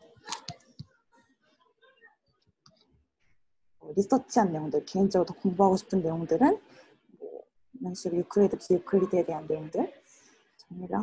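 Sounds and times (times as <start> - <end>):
person speaking: 7.2 - 9.9.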